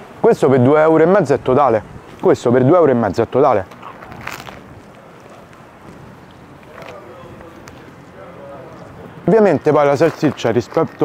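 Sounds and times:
road traffic: 0.0 - 11.0
wind on microphone: 3.8 - 6.6.

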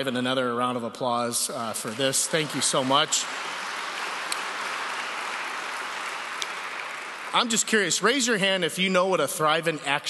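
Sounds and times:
audience applauding: 1.6 - 8.6.

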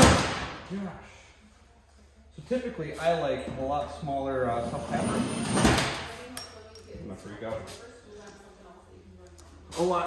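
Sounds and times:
light metallic clinks and taps: 6.2 - 7.1.

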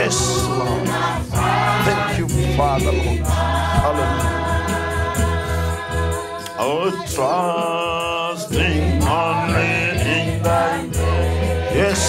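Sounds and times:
steady low bass: 0.0 - 6.2
gospel voices singing: 0.0 - 12.0.

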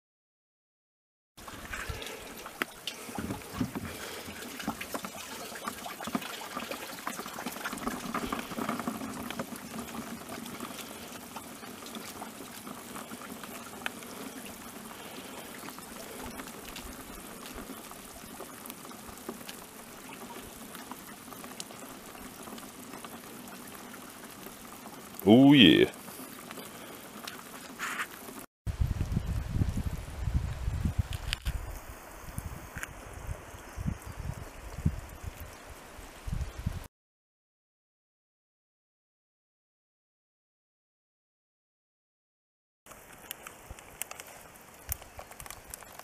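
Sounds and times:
water splashing into plastic tub: 1.4 - 19.4.

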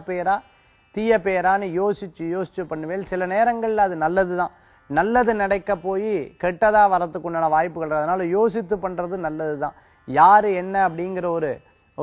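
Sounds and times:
man speaking: 0.0 - 0.4, 1.0 - 11.6.

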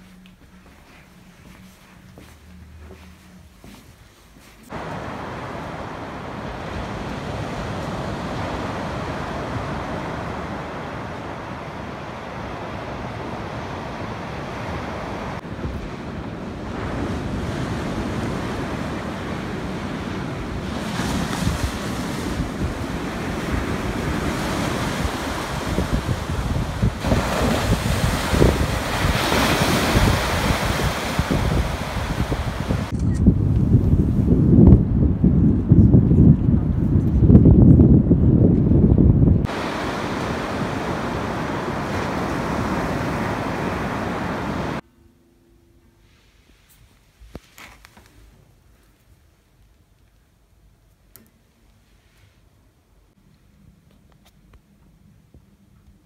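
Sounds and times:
sea waves washing: 4.7 - 32.9, 39.4 - 44.8
wind buffeting microphone: 4.7 - 44.8.

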